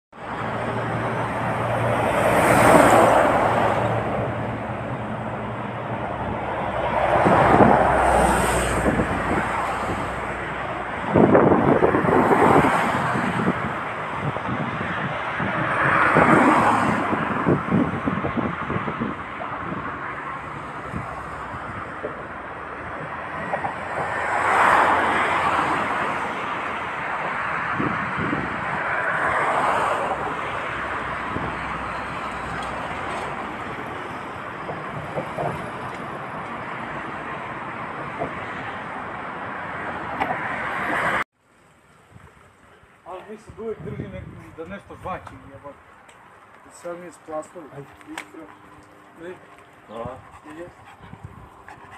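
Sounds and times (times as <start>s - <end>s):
cars and trucks passing: 0.1s - 51.9s
wind buffeting microphone: 5.9s - 24.2s, 25.6s - 29.4s, 30.1s - 33.8s, 43.3s - 45.8s, 47.7s - 51.9s.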